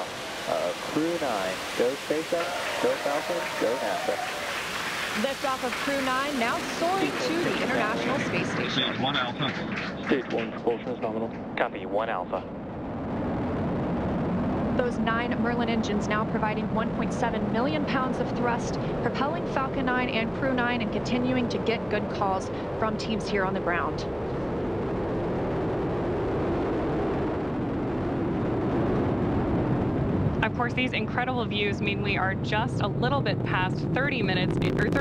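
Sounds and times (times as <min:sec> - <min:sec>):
rocket engines rumbling: 0:00.0 - 0:35.0
person speaking: 0:05.2 - 0:12.4.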